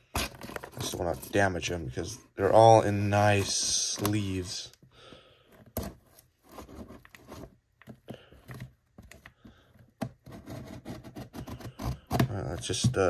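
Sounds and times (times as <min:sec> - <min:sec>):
knife cutting cardboard: 0:00.0 - 0:01.5, 0:05.5 - 0:13.0
cardboard box being handled: 0:05.6 - 0:09.3.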